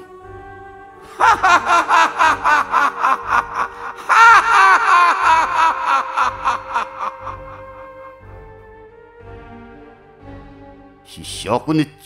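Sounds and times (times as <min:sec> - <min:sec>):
man laughing theatrically: 0:01.1 - 0:08.0.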